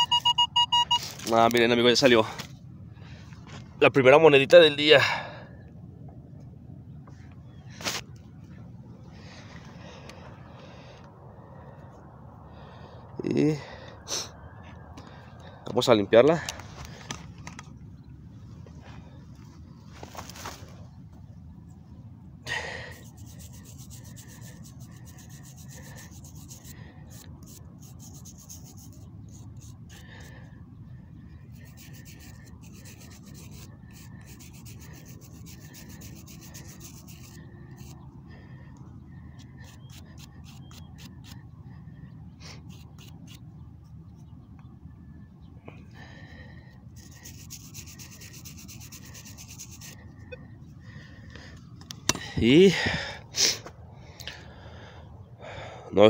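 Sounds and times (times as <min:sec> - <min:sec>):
fingers rubbing soil off coin: 0:22.8 - 0:30.3, 0:31.4 - 0:38.0, 0:39.3 - 0:41.5, 0:42.6 - 0:43.6, 0:47.0 - 0:50.2.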